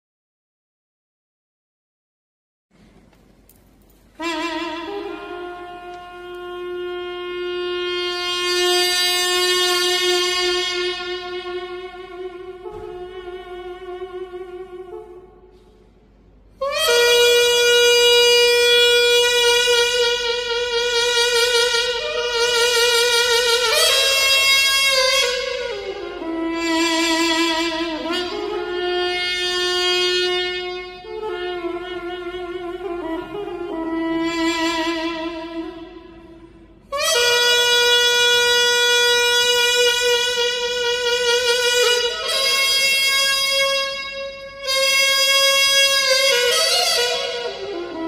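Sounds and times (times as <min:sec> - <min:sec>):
double-reed oboe long note: 0:04.2 - 0:15.7, 0:16.6 - 0:48.0.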